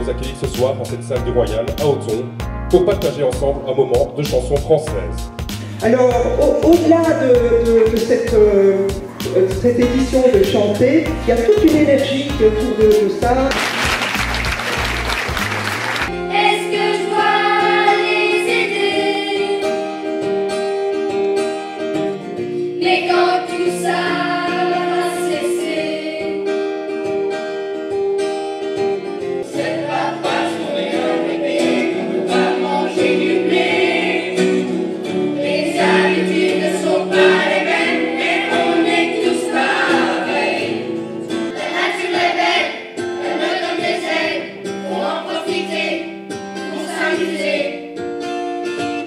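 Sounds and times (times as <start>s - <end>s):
acoustic guitar: 0.0s - 49.0s
children's choir singing: 16.2s - 20.0s, 22.7s - 26.6s, 29.4s - 47.9s.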